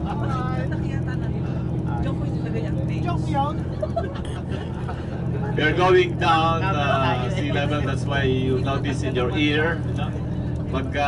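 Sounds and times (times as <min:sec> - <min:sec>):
coach engine and road noise: 0:00.0 - 0:11.0
faint passenger voices: 0:00.0 - 0:11.0.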